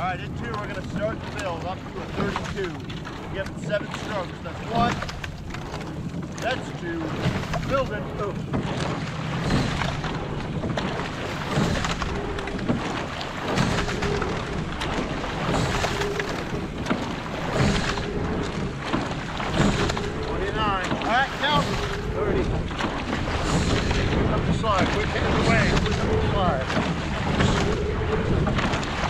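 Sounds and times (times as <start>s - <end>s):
oars splashing in water: 0.0s - 29.0s
wind on microphone: 0.0s - 29.0s.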